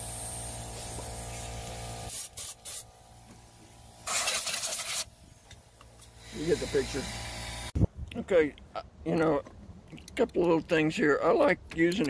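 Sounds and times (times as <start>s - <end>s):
compressed air blasts: 0.0s - 7.9s.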